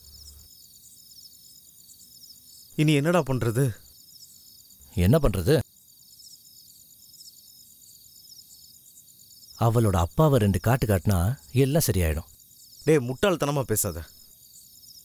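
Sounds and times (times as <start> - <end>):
crickets chirping: 0.0 - 15.0
person speaking: 2.8 - 3.8, 4.8 - 5.6, 9.6 - 14.2.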